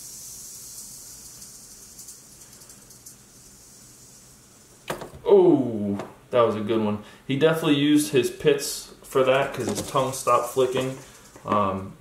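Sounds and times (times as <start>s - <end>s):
rattlesnake rattling: 0.0s - 4.9s, 9.8s - 11.5s.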